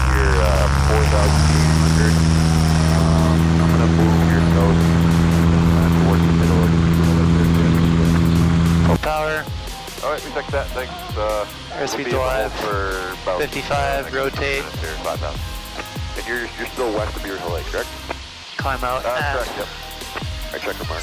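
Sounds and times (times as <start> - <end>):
small plane engine and propeller: 0.0 - 10.8
people talking: 0.0 - 17.9, 18.6 - 19.8, 20.5 - 21.0.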